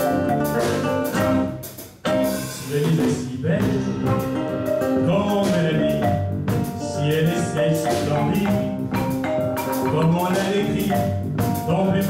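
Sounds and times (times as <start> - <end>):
acoustic guitar: 0.0 - 12.0
drum kit: 0.0 - 12.0
electric bass: 0.0 - 12.0.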